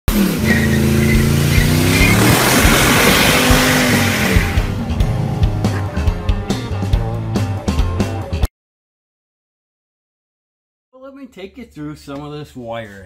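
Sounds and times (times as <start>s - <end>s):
car engine revving: 0.1s - 7.9s
tyres squealing: 0.4s - 3.9s
rock guitar music: 1.2s - 8.5s.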